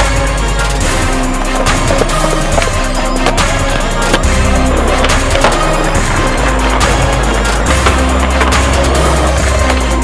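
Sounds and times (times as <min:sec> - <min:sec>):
music with steady beat: 0:00.0 - 0:10.0
skateboard rolling on concrete: 0:00.0 - 0:10.0.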